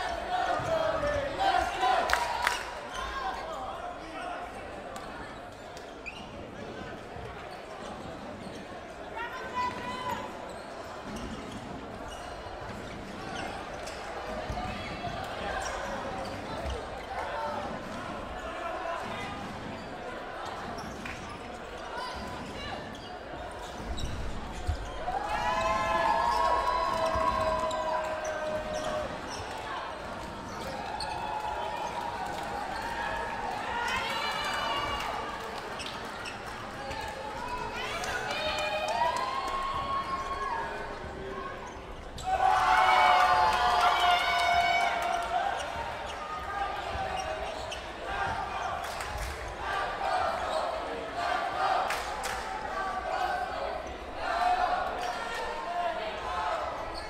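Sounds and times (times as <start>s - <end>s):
players' voices and shouts echoing: 0.0s - 57.0s.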